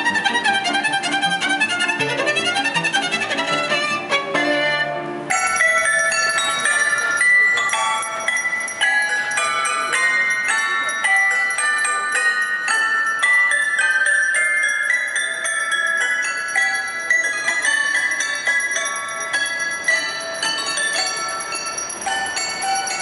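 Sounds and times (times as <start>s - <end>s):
toy piano playing bright notes: 0.2s - 23.0s.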